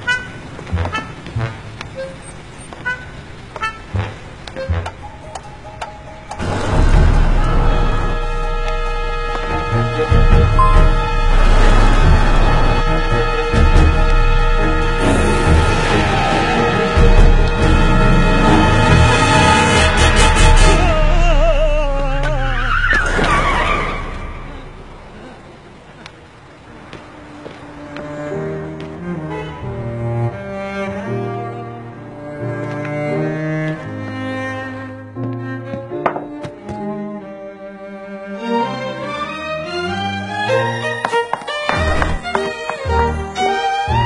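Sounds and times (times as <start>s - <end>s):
idling bus hum: 0.0s - 22.9s
tyres squealing: 18.4s - 25.4s.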